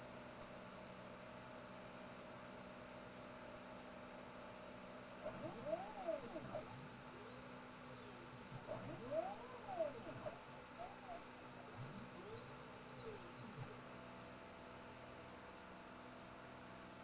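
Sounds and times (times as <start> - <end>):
faint steady hum: 0.0 - 17.0
stepper motors whining: 5.2 - 13.8.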